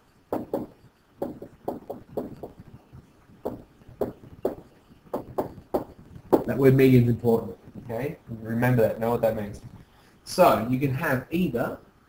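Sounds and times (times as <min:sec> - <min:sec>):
stylus tapping on tablet screen: 0:00.3 - 0:06.6.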